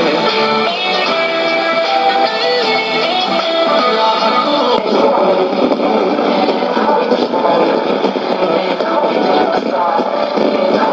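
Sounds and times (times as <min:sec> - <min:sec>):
music on shortwave radio: 0:00.0 - 0:10.9
overlapping radio talk and music: 0:00.0 - 0:10.9
radio retuning: 0:00.0 - 0:10.9.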